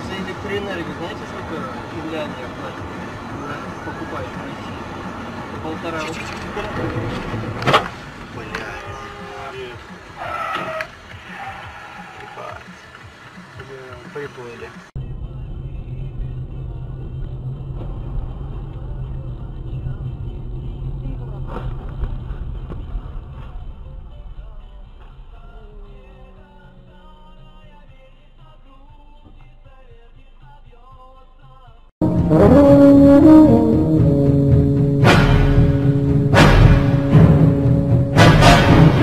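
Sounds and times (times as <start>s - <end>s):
voices in car: 0.0s - 32.0s
engine and road noise rumble: 0.0s - 39.0s.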